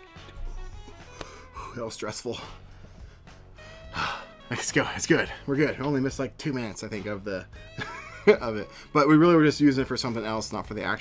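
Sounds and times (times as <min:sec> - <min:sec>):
faint background music: 0:00.0 - 0:11.0
man talking: 0:01.6 - 0:02.6, 0:04.4 - 0:07.5, 0:08.3 - 0:11.0.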